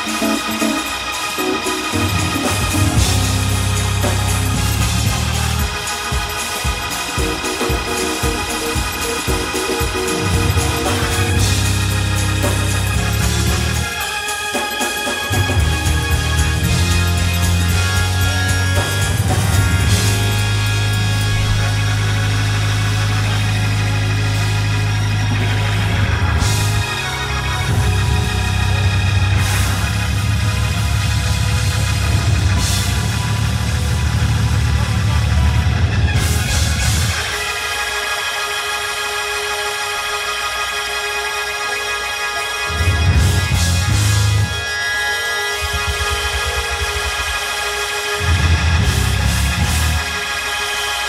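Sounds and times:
organ sustained chord: 0:00.0 - 0:51.0
pulsing low bass: 0:02.0 - 0:05.8, 0:08.8 - 0:13.9, 0:15.4 - 0:37.1, 0:42.7 - 0:44.6, 0:48.2 - 0:50.0
low bass note: 0:15.6 - 0:26.9.

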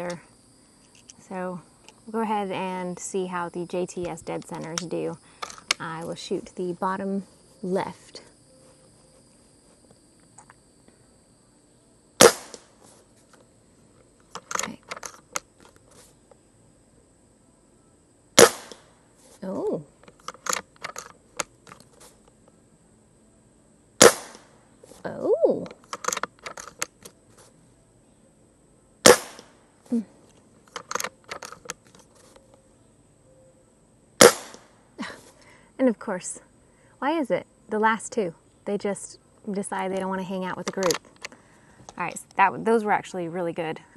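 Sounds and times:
air rifle shots: 0:12.2 - 0:12.8, 0:18.4 - 0:18.9, 0:24.0 - 0:24.6, 0:29.0 - 0:29.6, 0:34.2 - 0:34.8
rifle clicks: 0:20.1 - 0:21.8, 0:25.7 - 0:27.2, 0:30.7 - 0:31.9.

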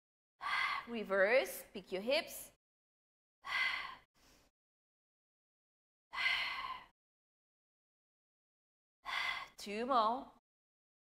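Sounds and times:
woman breathing out: 0:03.4 - 0:04.5, 0:06.1 - 0:07.0, 0:09.0 - 0:09.6.

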